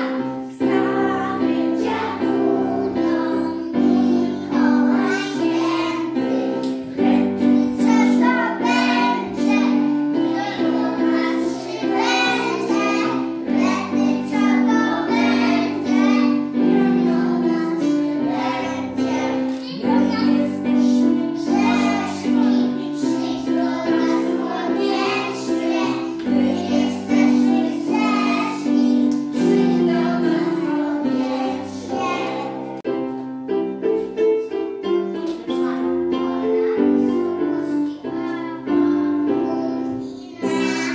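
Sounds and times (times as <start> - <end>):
children singing: 0.0 - 32.8, 34.3 - 40.9
instrumental music: 0.0 - 40.9.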